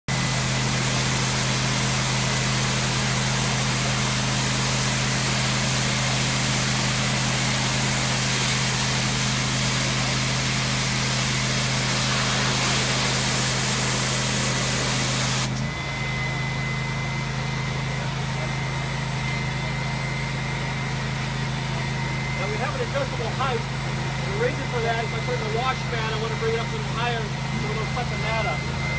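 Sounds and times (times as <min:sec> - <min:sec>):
pressure washer spraying concrete: 0:00.1 - 0:15.7, 0:17.3 - 0:28.8
engine droning: 0:15.4 - 0:28.9.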